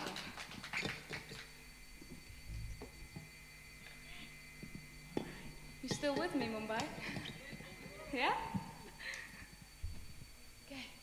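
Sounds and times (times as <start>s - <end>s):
scattered clapping: 0.0s - 1.6s.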